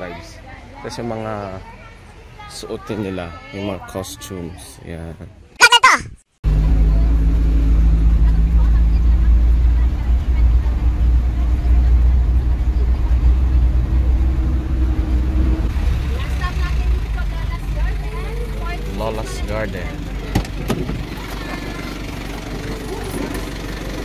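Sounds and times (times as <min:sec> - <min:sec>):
vehicle engine and road rumble: 0:06.4 - 0:24.0.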